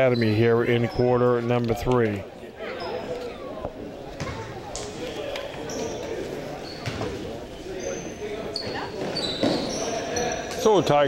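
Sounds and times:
sneaker squeaks: 4.1 - 10.8
basketball bouncing on wooden floor: 6.8 - 7.1.

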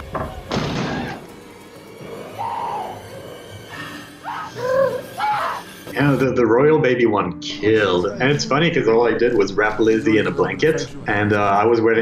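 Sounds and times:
tense horror music: 0.0 - 12.0.

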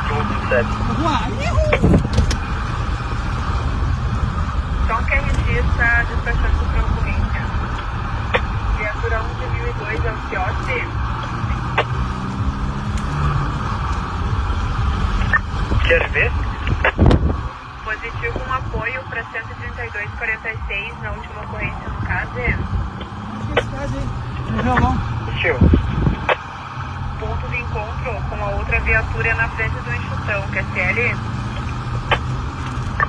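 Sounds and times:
person talking: 0.0 - 2.0, 15.2 - 17.1, 23.4 - 25.8
car engine hum: 0.0 - 33.0
road noise: 0.0 - 33.0.

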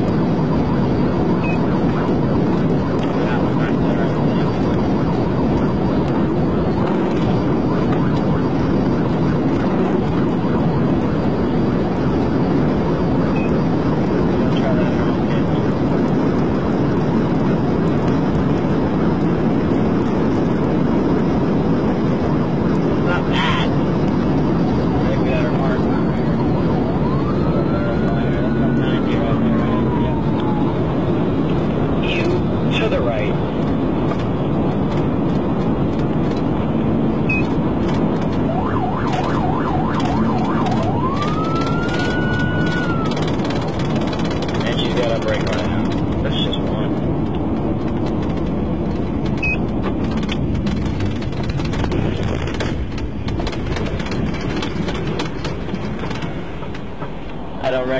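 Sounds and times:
faint siren wail: 0.0 - 52.5
wind and road noise: 0.0 - 57.9.

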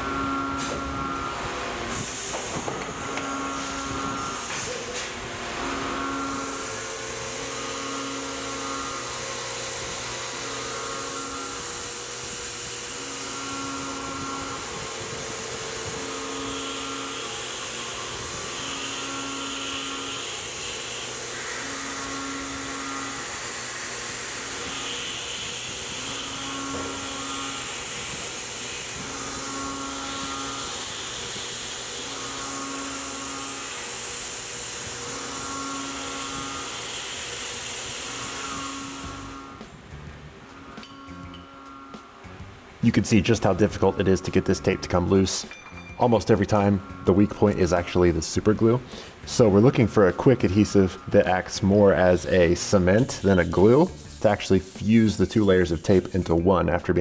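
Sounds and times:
humming tone: 0.0 - 1.6, 2.8 - 20.5, 24.1 - 28.1, 28.9 - 30.9, 34.8 - 36.8, 37.9 - 53.2
cnc mill cutting metal: 0.0 - 57.0.

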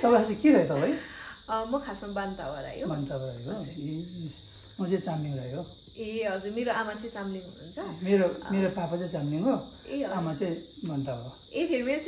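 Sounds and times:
person speaking: 0.0 - 1.3.

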